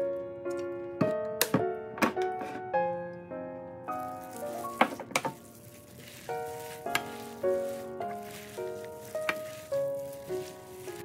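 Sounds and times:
piano-like background music: 0.0s - 11.0s
noodles sizzling in frying pan: 4.0s - 11.0s
wooden spatula tossing food: 4.0s - 11.0s.

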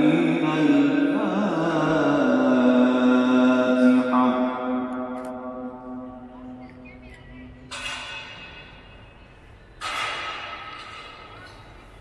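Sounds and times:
man chanting with reverberation: 0.0s - 7.4s.

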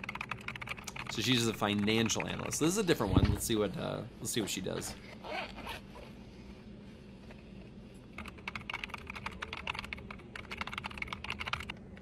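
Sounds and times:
fast keyboard typing: 0.0s - 2.7s, 8.2s - 12.0s
bag zipper opening: 5.0s - 6.1s.

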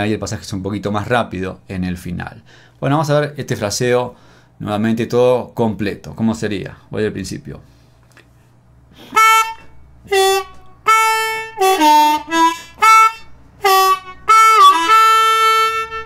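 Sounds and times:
harmonica playing blues phrase: 9.0s - 16.0s.

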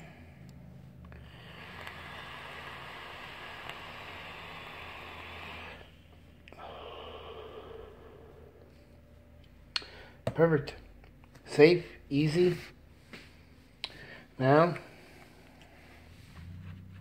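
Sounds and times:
e-cigarette drag hiss: 1.1s - 8.5s
person exhaling: 1.1s - 9.0s.

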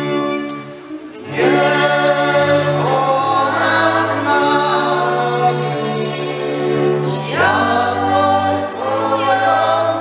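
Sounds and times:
fiddles and string bass playing: 0.0s - 10.0s
voices singing together: 0.0s - 10.0s.

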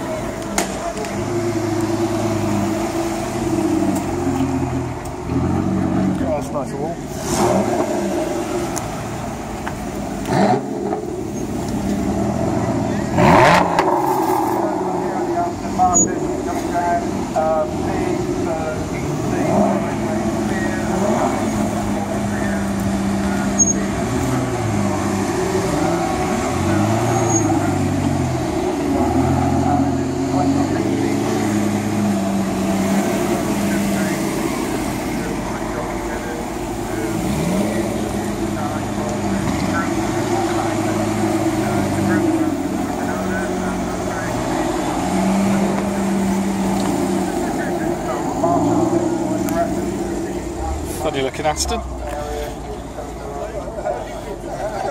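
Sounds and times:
crowd chatter: 0.0s - 54.9s
sports car engines at low revs: 0.0s - 54.9s.

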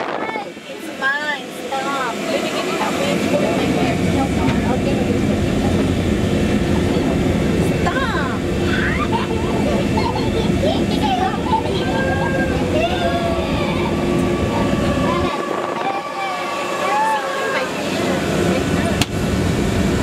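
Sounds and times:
low machinery hum: 0.0s - 20.0s
passengers chattering: 0.0s - 20.0s.

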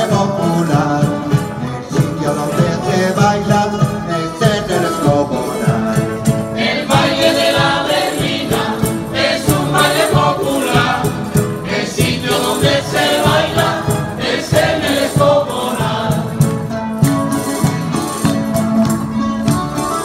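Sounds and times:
group singing in chorus: 0.0s - 16.8s
drum beating time: 0.0s - 20.0s
strummed guitars and lutes: 0.0s - 20.0s.

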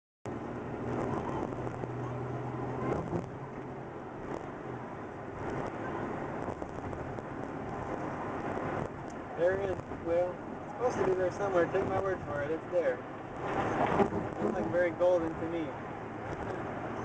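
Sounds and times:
road and tyre noise: 0.2s - 17.0s
low engine hum: 0.3s - 17.0s.

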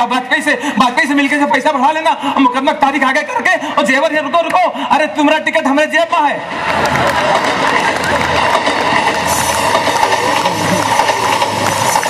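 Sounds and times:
man imitating a train: 9.3s - 12.0s.

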